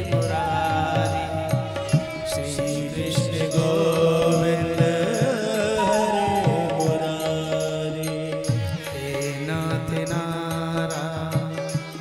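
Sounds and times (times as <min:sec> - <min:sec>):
held chords: 0:00.0 - 0:09.5
person singing devotional chant: 0:00.0 - 0:12.0.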